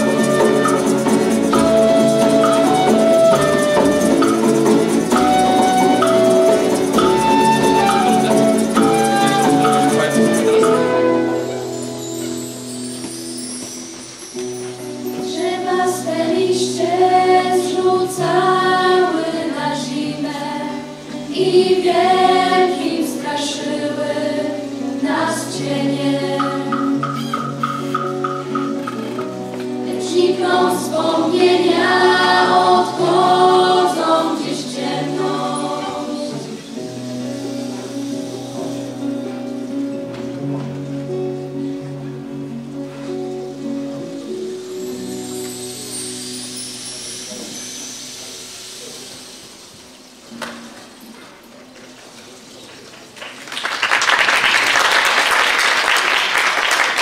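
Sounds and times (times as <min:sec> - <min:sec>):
acoustic ensemble with guitar: 0:00.0 - 0:57.0
vocal group singing: 0:15.2 - 0:27.5, 0:29.8 - 0:36.9.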